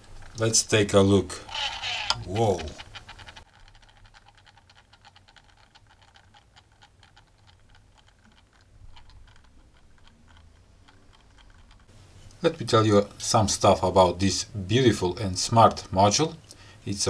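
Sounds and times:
turntable gear ticking: 0:01.4 - 0:12.4.

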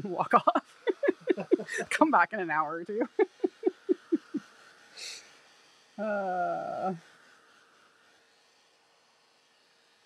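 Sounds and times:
woman laughing: 0:00.0 - 0:04.4
breath through the nose: 0:04.8 - 0:05.4.

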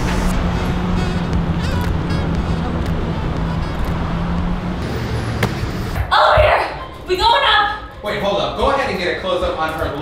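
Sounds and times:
street traffic: 0:00.0 - 0:06.1.

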